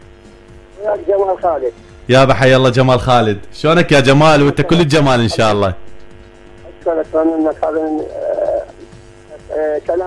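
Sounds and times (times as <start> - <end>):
man talking: 0.8 - 5.9.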